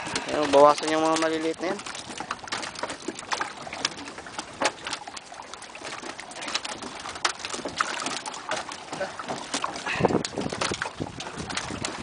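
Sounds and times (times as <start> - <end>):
fish flapping and slapping: 0.0 - 12.0.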